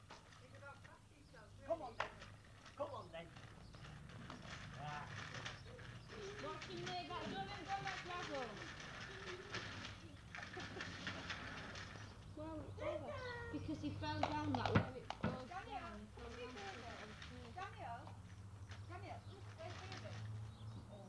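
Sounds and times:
small wheels rattling over paving: 0.0s - 21.0s.

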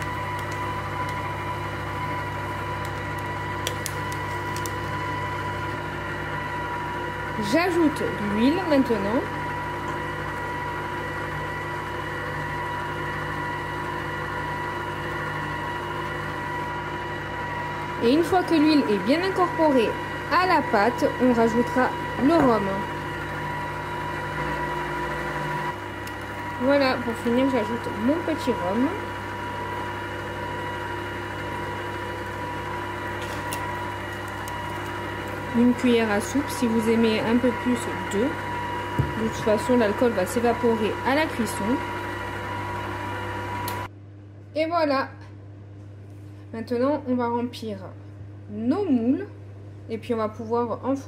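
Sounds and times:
stand mixer motor hum and whine: 0.0s - 44.0s.

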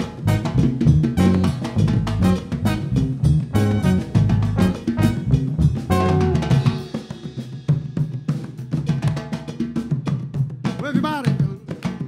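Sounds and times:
low bass notes: 0.0s - 6.9s
drum kit: 0.0s - 12.0s
hand drums: 0.0s - 12.0s.

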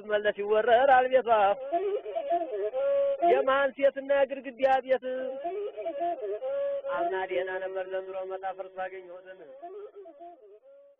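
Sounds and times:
bowed one-stringed fiddle melody: 0.4s - 10.9s.

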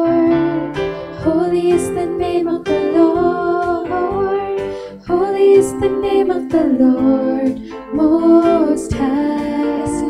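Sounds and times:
electronic keyboard accompaniment: 0.0s - 10.0s
women singing worship chorus: 0.0s - 10.0s.

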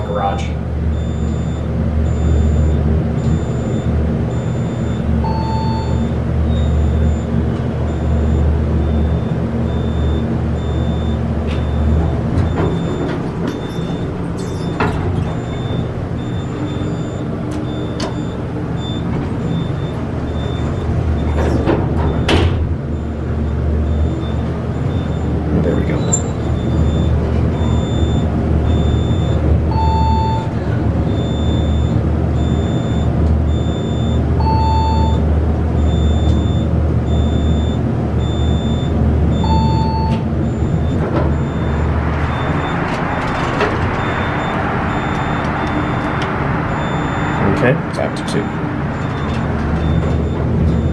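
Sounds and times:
clicks and knocks of elevator doors: 0.0s - 50.9s
elevator humming: 0.0s - 50.9s
short beep: 5.3s - 6.7s.

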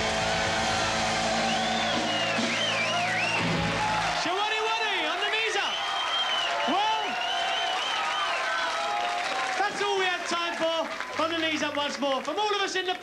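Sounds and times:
audience applauding: 0.0s - 13.0s.

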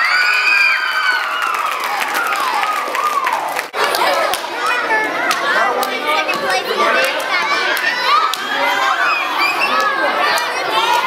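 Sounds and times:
children shouting and cheering: 0.0s - 11.0s.

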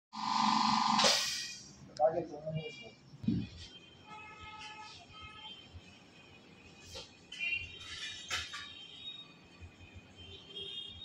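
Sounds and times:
pulsing electronic buzzing tone: 0.1s - 1.1s
sharp hiss: 1.0s - 1.6s.

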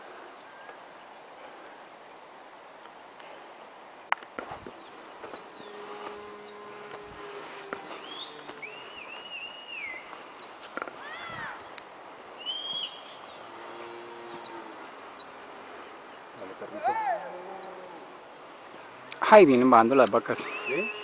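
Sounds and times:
birds chirping and whistling: 4.8s - 7.0s, 7.7s - 10.6s, 12.4s - 16.6s, 20.4s - 21.0s.

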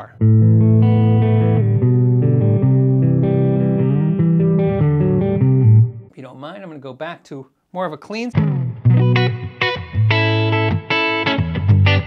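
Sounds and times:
distorted electric guitar chords: 0.0s - 6.1s, 8.4s - 12.0s.

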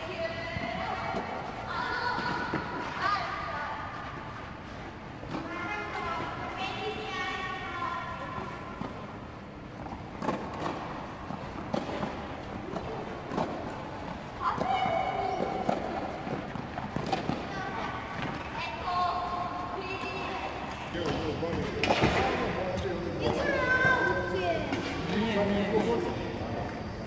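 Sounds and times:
tennis balls hit and bouncing: 9.8s - 18.6s, 20.1s - 22.6s.

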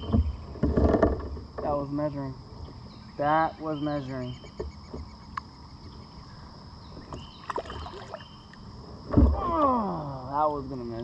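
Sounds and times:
water lapping against hull: 7.0s - 8.4s.

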